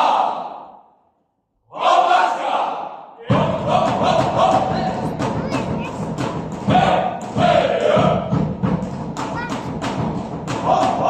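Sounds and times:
drum: 3.2s - 11.0s.

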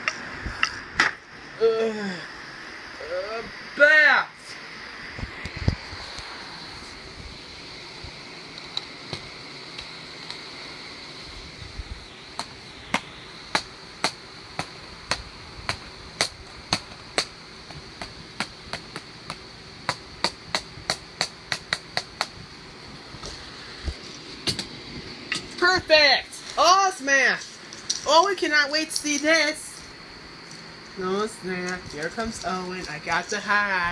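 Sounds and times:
stick knocking plastic cases: 12.4s - 22.4s.

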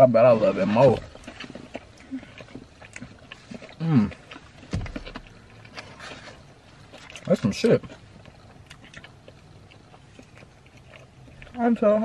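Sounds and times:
chewing and mouth sounds: 0.0s - 12.0s.

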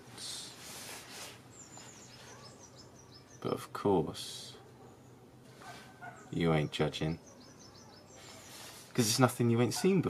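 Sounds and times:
faint songbird chirping: 0.1s - 10.0s.

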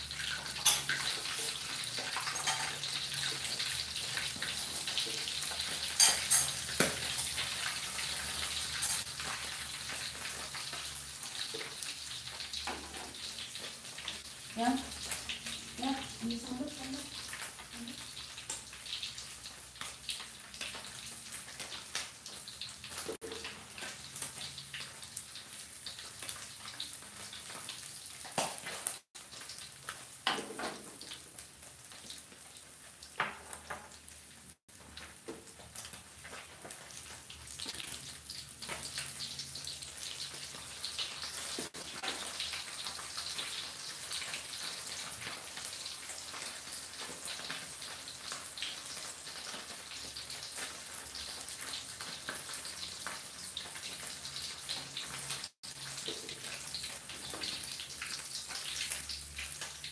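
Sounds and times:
fish frying in hot oil: 0.0s - 59.9s.

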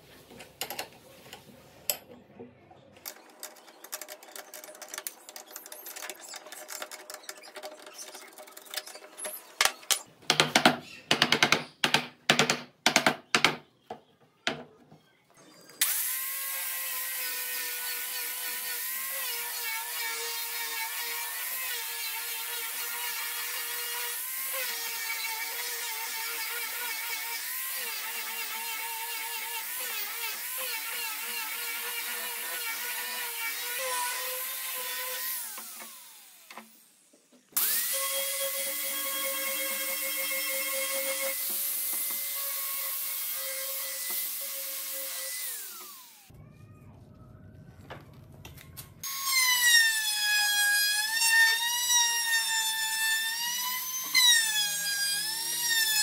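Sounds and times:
angle grinder sanding wood: 15.8s - 36.8s.

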